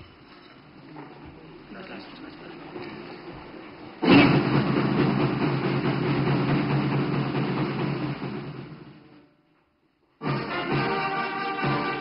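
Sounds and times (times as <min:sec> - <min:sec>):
band playing an anthem: 0:10.2 - 0:12.0.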